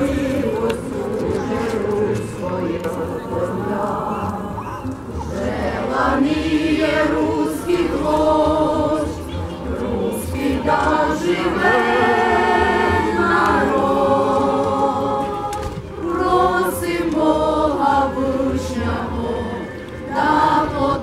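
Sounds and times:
choir singing held notes: 0:00.0 - 0:21.0.

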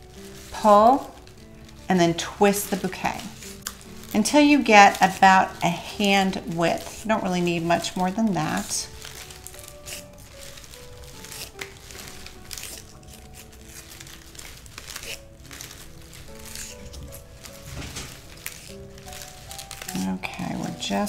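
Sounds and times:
soft background music: 0:00.0 - 0:21.0
stems and leaves rustling: 0:00.0 - 0:21.0
tape crinkling: 0:00.0 - 0:21.0.

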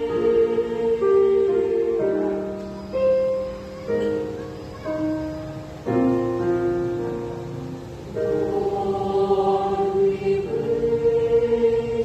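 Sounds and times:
mixed choir singing in harmony: 0:00.0 - 0:12.0.

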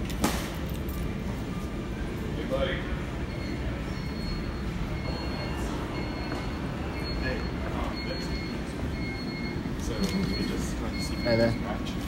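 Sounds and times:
store background rumble: 0:00.0 - 0:12.0.

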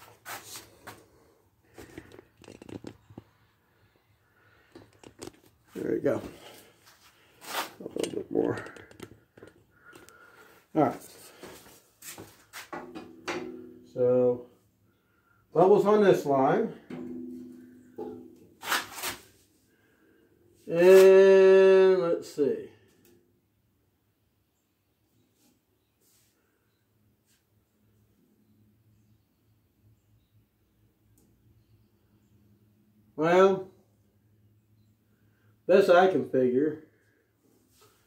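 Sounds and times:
handling rustles: 0:04.6 - 0:10.2
wooden level clunking on steel: 0:06.2 - 0:10.2, 0:16.9 - 0:19.1.

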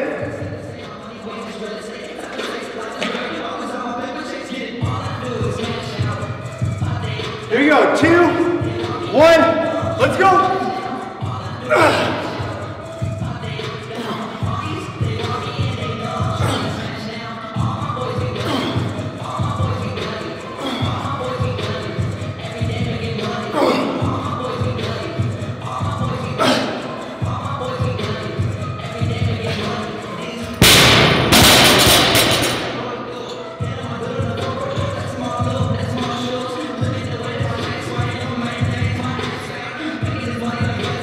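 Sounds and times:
background music with beat: 0:00.0 - 0:41.0
barbell crashing on gym floor: 0:30.6 - 0:33.1.

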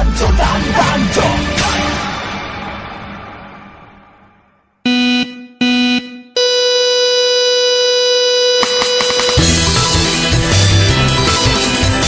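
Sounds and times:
long high steady beep: 0:04.9 - 0:09.6
short low electronic beeps: 0:04.9 - 0:09.6.

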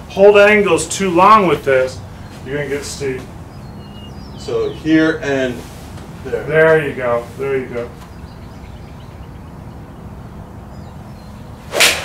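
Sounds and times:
golf iron striking ball: 0:11.7 - 0:12.0.

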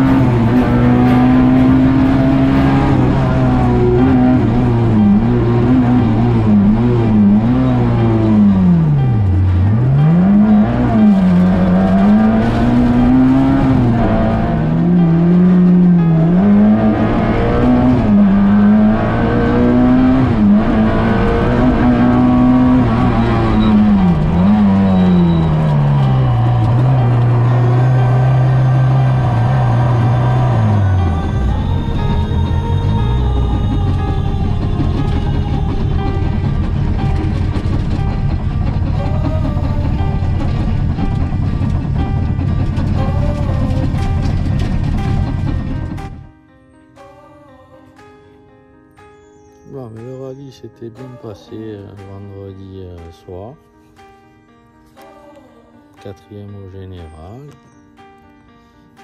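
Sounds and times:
rally car engine revving: 0:00.0 - 0:46.3.

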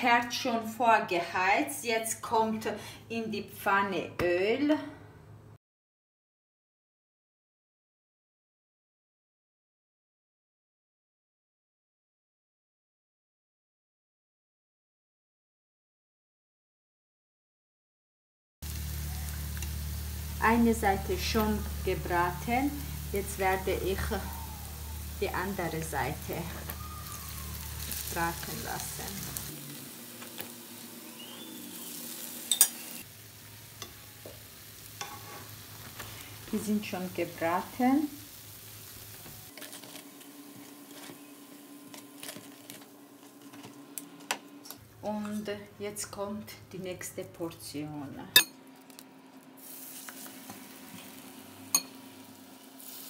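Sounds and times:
flatbread sizzling in oil: 0:18.6 - 0:43.9, 0:49.6 - 0:53.0.

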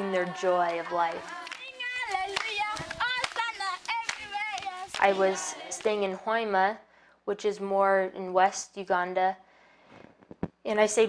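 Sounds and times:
children singing together: 0:00.0 - 0:06.2
hands clapping: 0:00.2 - 0:06.1.

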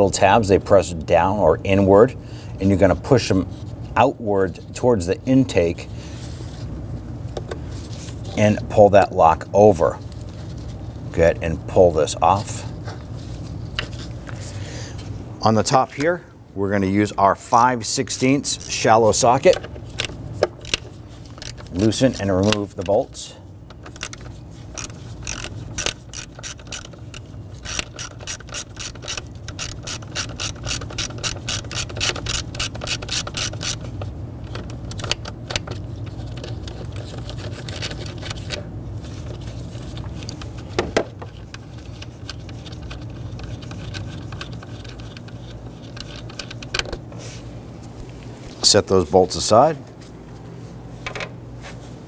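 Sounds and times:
steady low hum: 0:00.0 - 0:52.0
hand ratchet clicking: 0:18.1 - 0:23.0, 0:23.7 - 0:38.6.

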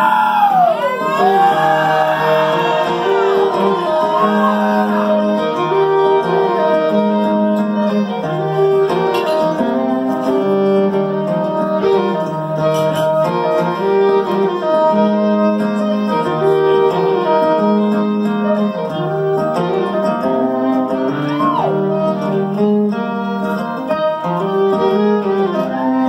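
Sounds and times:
country band playing: 0:00.0 - 0:26.0
fiddle melody: 0:00.0 - 0:26.0
strummed acoustic guitar: 0:00.8 - 0:26.0.

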